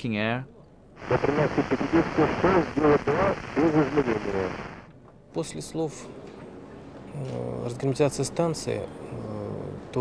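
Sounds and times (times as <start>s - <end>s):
man speaking over radio: 1.0s - 4.8s
radio static hiss: 1.0s - 4.9s.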